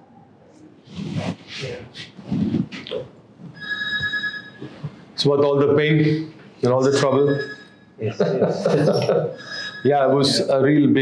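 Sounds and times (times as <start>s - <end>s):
electronic ring: 3.6s - 4.8s, 6.8s - 8.0s, 8.8s - 10.5s.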